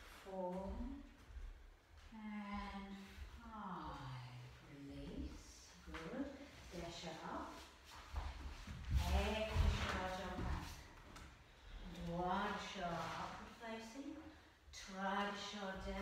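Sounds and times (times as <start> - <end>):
woman speaking: 0.2 - 1.1, 2.1 - 7.7, 9.0 - 10.9, 11.8 - 16.0.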